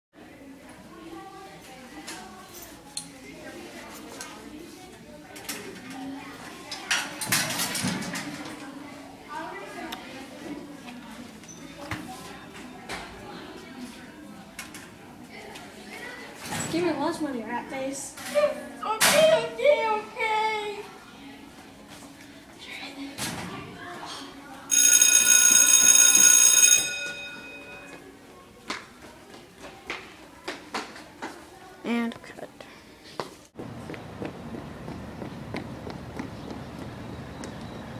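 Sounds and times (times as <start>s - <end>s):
electric bell ringing: 24.7s - 28.0s.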